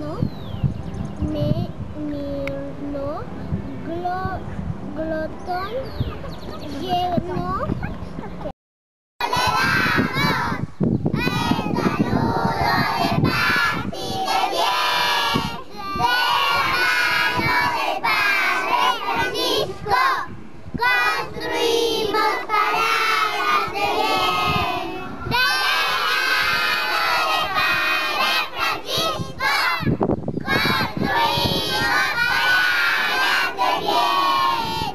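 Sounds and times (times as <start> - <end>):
chorus of girls' voices: 9.2 - 10.6, 11.2 - 34.9.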